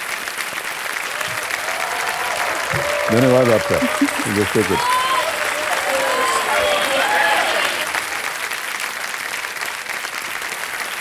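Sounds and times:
studio audience applauding: 0:00.0 - 0:11.0
faint voices: 0:01.1 - 0:08.3.

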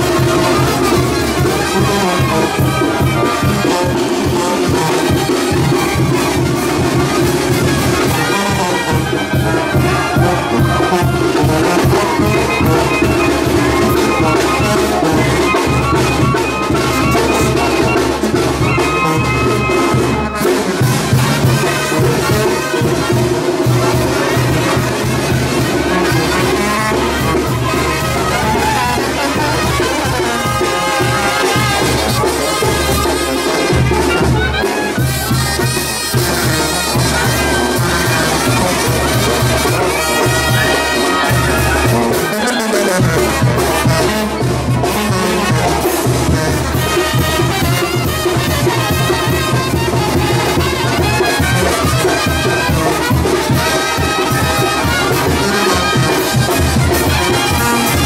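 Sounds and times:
brass band playing dance tune: 0:00.0 - 0:58.0.

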